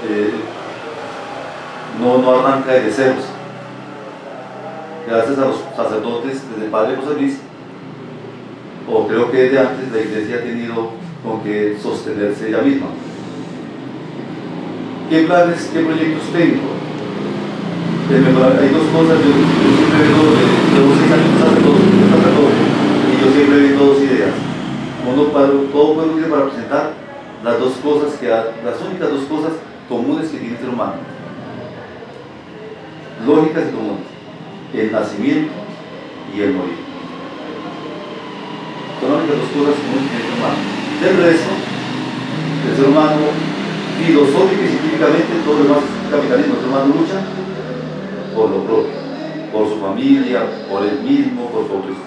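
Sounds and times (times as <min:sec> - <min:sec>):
faint hum: 0:00.0 - 0:52.0
steady background noise: 0:00.0 - 0:52.0.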